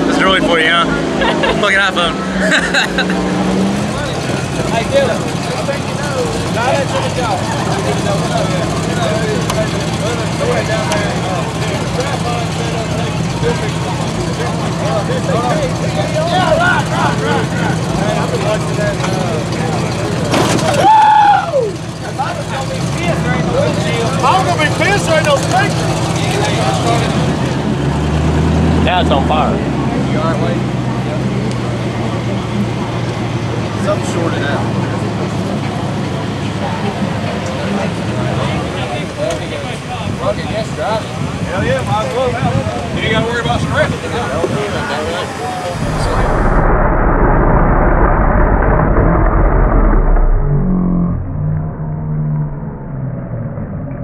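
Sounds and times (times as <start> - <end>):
people talking: 0.0 - 27.6, 28.6 - 46.7
car engine running hard: 0.0 - 54.0.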